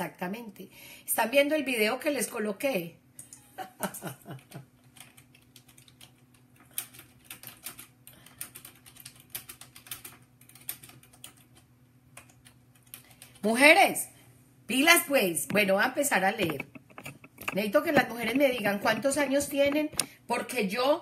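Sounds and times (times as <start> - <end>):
woman laughing: 3.5 - 4.6
typing on computer keyboard: 4.9 - 13.4, 16.4 - 20.1.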